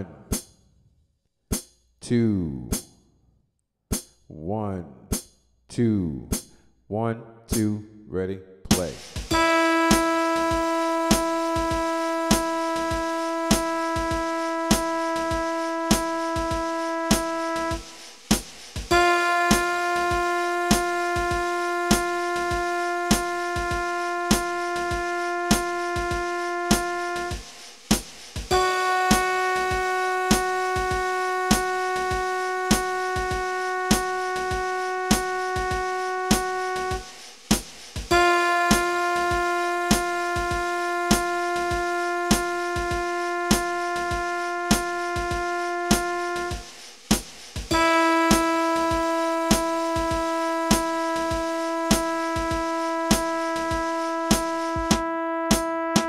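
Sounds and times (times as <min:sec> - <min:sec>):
held synthesized instrument note: 0:09.3 - 0:17.8, 0:18.9 - 0:27.4, 0:28.5 - 0:37.1, 0:38.1 - 0:44.3, 0:47.7 - 0:53.8.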